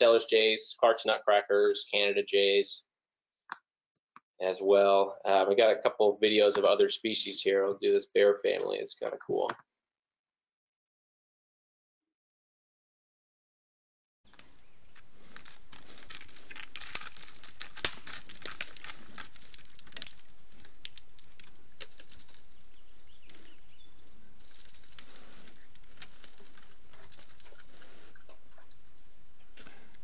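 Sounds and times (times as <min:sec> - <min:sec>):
claws scratching on bark: 0:14.4 - 0:29.1.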